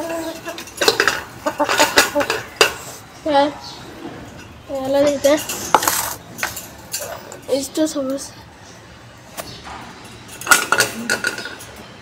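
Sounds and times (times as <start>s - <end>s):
metal utensils clinking: 0.0s - 3.0s, 4.3s - 7.7s, 10.0s - 12.0s.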